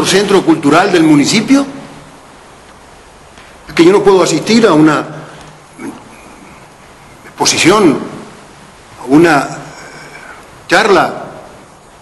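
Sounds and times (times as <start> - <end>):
man's amplified speech: 0.0 - 1.9, 3.7 - 6.1, 7.3 - 8.4, 9.0 - 11.6.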